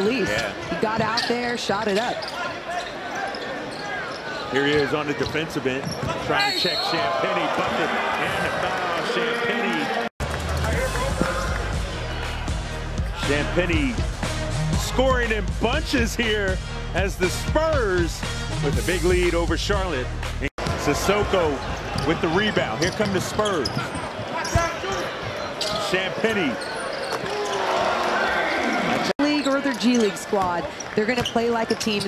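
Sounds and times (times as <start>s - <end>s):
crowd noise: 0.0s - 32.0s.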